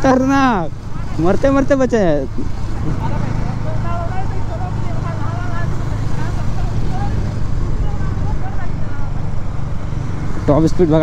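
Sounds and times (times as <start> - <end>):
motorcycle engines idling: 0.0 - 11.0.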